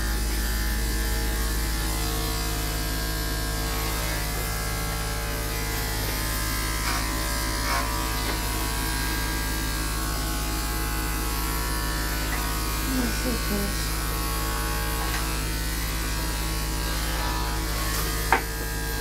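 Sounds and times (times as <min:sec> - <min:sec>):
electric clipper buzzing: 0:00.0 - 0:19.0.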